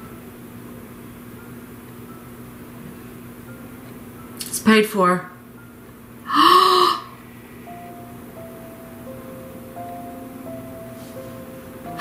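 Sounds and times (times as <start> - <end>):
soft background music: 0.0 - 12.0
woman gasping: 6.3 - 7.2.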